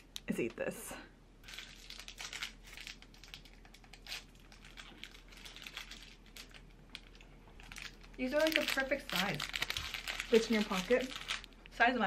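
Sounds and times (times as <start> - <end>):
plastic wrapper crackling: 1.4 - 11.8.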